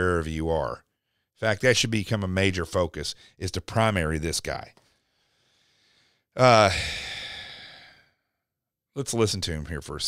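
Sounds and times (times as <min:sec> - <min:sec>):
man's drawn-out uh and sigh: 0:06.4 - 0:08.0.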